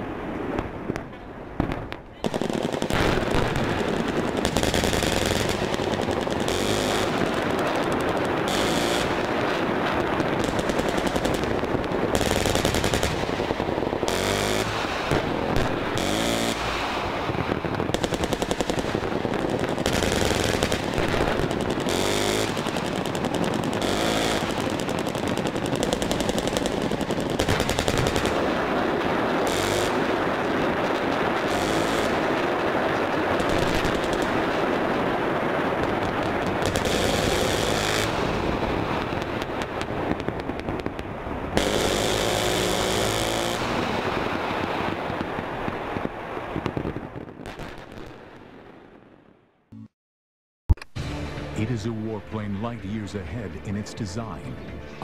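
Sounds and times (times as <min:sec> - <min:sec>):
heavy automatic gunfire: 0:02.3 - 0:09.4, 0:10.4 - 0:16.9, 0:17.9 - 0:32.5, 0:35.9 - 0:39.1.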